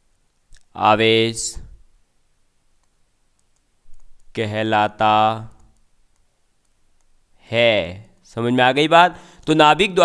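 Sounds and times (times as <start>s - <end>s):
man's voice: 0.7s - 1.8s, 4.3s - 5.8s, 7.4s - 10.0s
stylus clicking on tablet: 2.8s - 4.4s, 5.5s - 7.2s.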